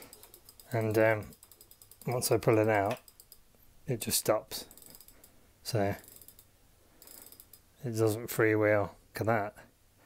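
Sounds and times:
freehub ratchet clicking: 0.0s - 3.4s, 4.7s - 5.4s, 6.0s - 7.7s.

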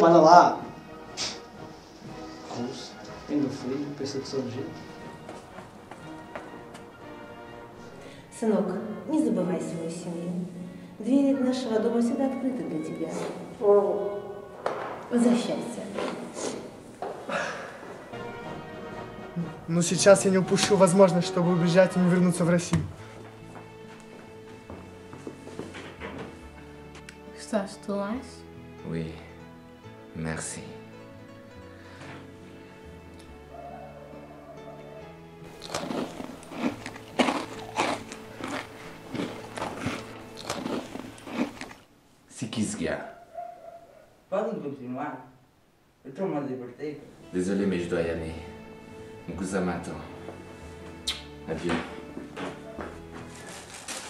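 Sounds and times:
soft background music: 0.0s - 45.3s, 46.0s - 54.0s
person crunching snack: 35.5s - 41.9s, 53.4s - 54.0s.

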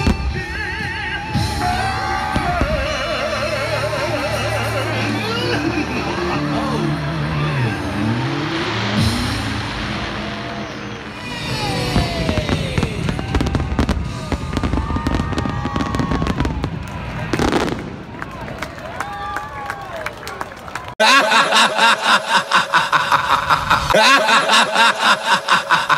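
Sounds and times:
fireworks crackling bangs: 8.1s - 18.5s
loud firework burst: 8.2s - 18.0s.

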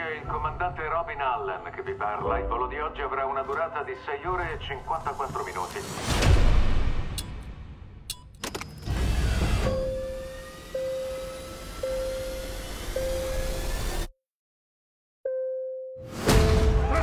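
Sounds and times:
rising tones: 8.9s - 14.1s
pulsing steady tone: 9.7s - 14.1s.

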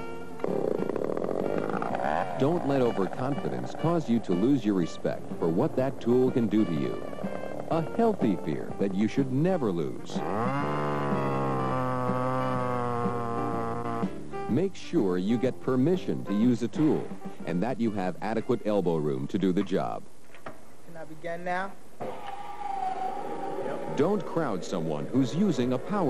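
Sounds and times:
chainsaw revving: 0.4s - 3.0s, 10.1s - 14.3s
bandsaw motor whining: 10.1s - 14.2s.

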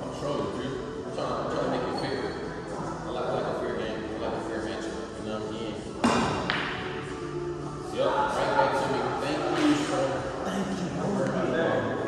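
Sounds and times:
cue striking cue ball: 6.0s - 7.0s.

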